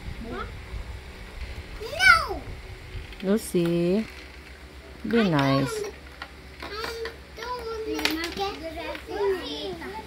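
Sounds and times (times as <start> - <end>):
young children chattering: 5.0 - 6.0, 6.6 - 10.0.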